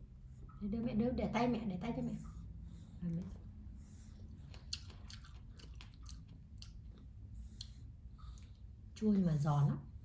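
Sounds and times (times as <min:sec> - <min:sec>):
chewing strawberry: 0:02.7 - 0:09.0.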